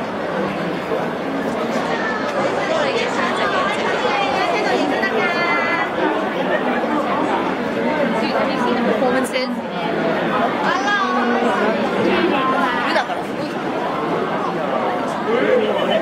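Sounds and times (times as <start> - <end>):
crowd babble: 0.0 - 16.0.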